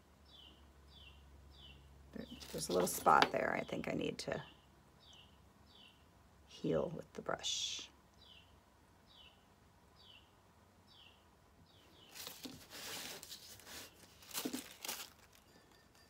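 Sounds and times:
small bird chirping: 0.2 - 6.1, 8.2 - 12.4
rustling: 2.2 - 3.3, 12.0 - 15.7.

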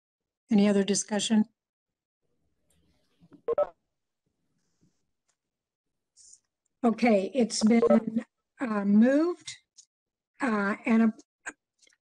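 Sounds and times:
electronic entry tones: 7.6 - 8.2.

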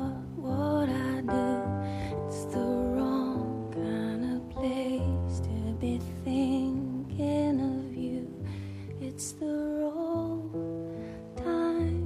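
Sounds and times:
slow gentle song with guitar: 0.0 - 12.0.

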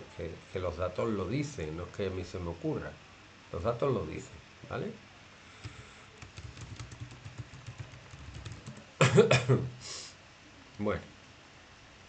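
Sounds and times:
typing on keyboard: 5.6 - 8.9.

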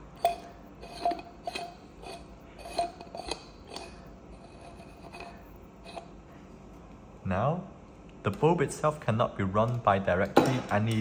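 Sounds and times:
glass scraping clicks and clinks: 0.1 - 6.2.

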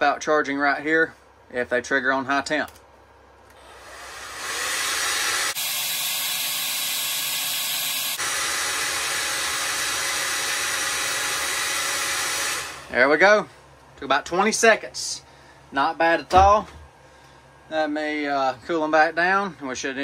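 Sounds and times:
heat gun blowing air: 3.5 - 13.0.

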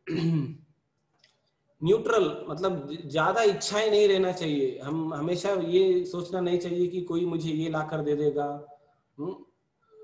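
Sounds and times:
man clearing throat: 0.0 - 0.7
man speaking: 1.8 - 9.6.

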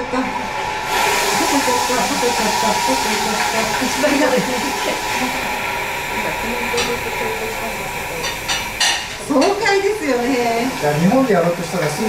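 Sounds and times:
crowd voices: 0.0 - 12.0
loud steady hydraulic hiss: 0.0 - 12.0.

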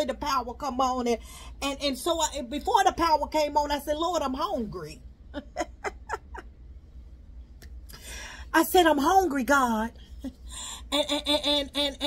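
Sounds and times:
steady low hum: 0.0 - 12.0
woman laughing: 5.3 - 6.6, 10.1 - 12.0.

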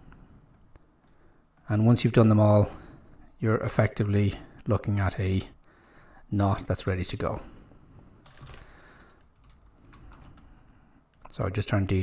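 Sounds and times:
computer keyboard clicks: 8.2 - 10.5.

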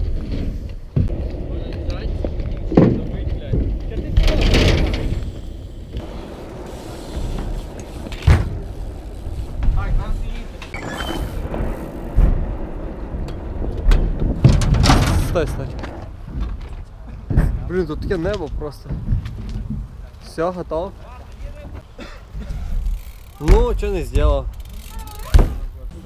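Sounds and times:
wheels knocking on ramps: 0.0 - 20.2, 22.5 - 26.0
bike tyres rolling on boards: 0.0 - 26.0
low rumble: 0.9 - 17.7.

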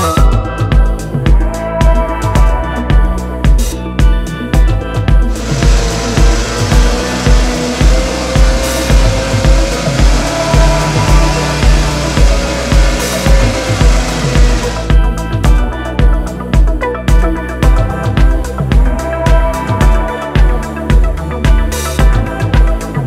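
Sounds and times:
background music with steady beat: 0.0 - 23.0
chainsaw cutting wood: 5.3 - 14.9.

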